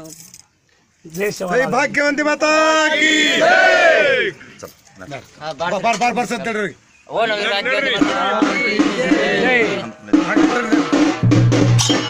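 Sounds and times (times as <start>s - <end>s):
men shouting together: 2.4s - 4.5s, 7.1s - 10.0s.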